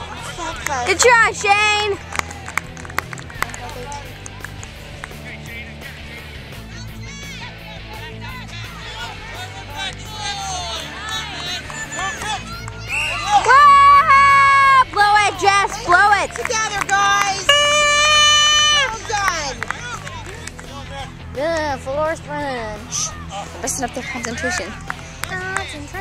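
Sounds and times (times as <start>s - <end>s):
spectators calling out: 6.7s - 20.8s, 22.8s - 25.2s
crowd long held shout: 6.8s - 20.4s.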